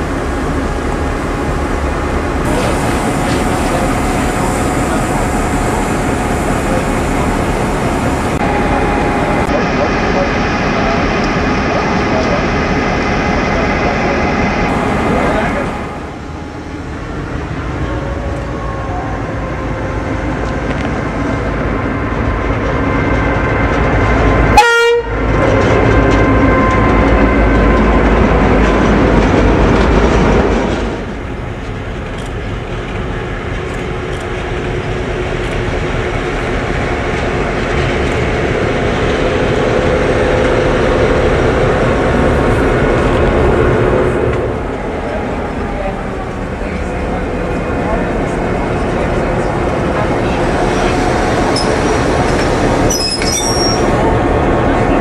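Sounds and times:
diesel locomotive engines running: 0.0 - 55.0.

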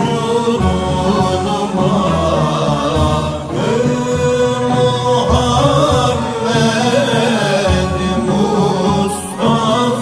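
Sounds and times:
men singing a slow chant: 0.0 - 10.0.

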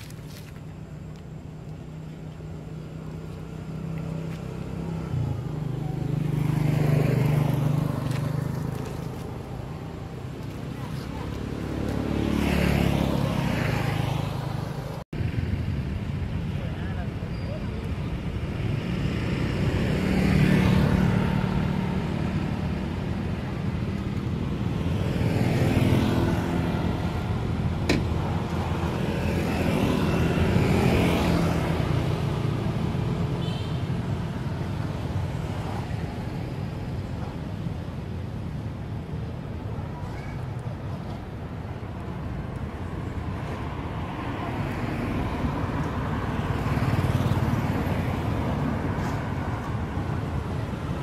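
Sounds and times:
steady traffic rumble: 0.0 - 51.0
vehicles passing: 0.0 - 51.0.

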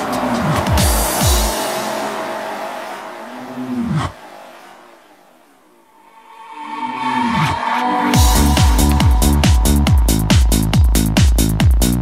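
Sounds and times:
high whoosh: 0.0 - 11.1
low droning tone bending down: 0.1 - 11.2.

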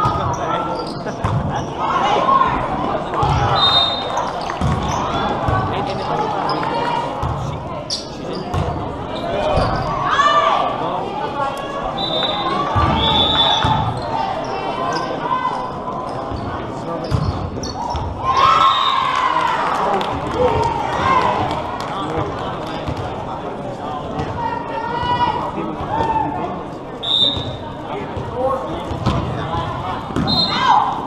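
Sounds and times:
shoes squeaking: 7.8 - 10.0.

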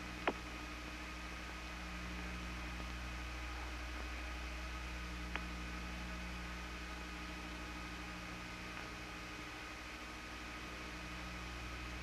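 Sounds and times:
low electrical hum: 0.0 - 12.0
steady hiss: 0.0 - 12.0.

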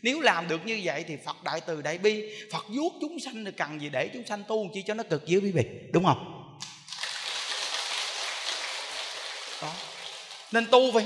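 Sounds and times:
audience applauding: 6.6 - 11.0.

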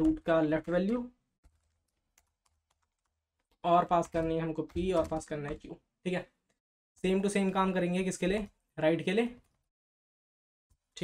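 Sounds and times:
typing on computer keyboard: 0.0 - 5.8.

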